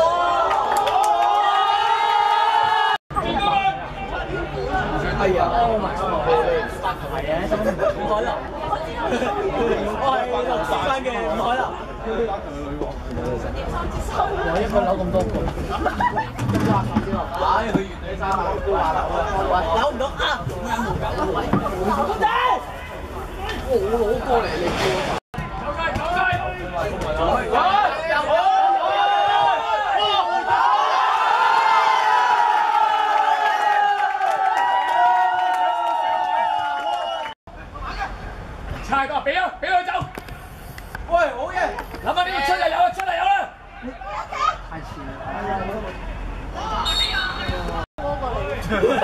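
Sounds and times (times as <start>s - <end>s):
players and spectators chattering: 3.1s - 31.4s, 37.5s - 49.0s.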